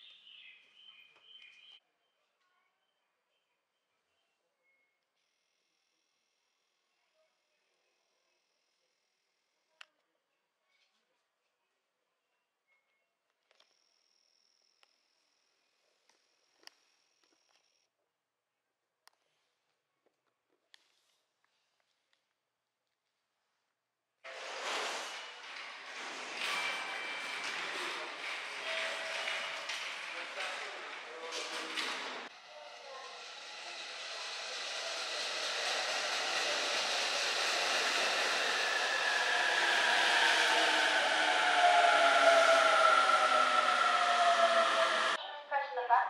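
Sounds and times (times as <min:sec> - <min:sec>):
electric train braking with motor whine: 0:24.3 - 0:45.2
voices on platform: 0:25.5 - 0:35.7, 0:38.2 - 0:46.0.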